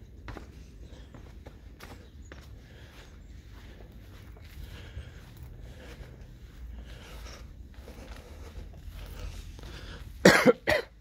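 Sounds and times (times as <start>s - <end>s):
person coughing laugh: 10.2s - 11.0s.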